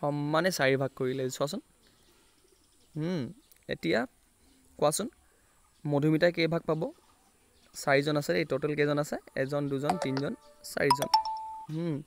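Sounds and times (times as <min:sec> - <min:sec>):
two-note electronic chime: 0:09.9 - 0:11.8.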